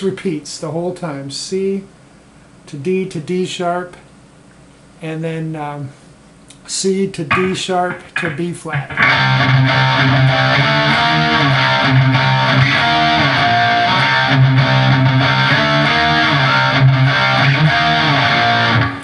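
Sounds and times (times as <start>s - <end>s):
distorted electric guitar riff: 7.2s - 19.0s.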